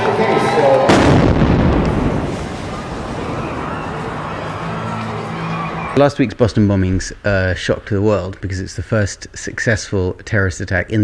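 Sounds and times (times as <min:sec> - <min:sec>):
bomb explosion with lingering boom: 0:00.9 - 0:04.6.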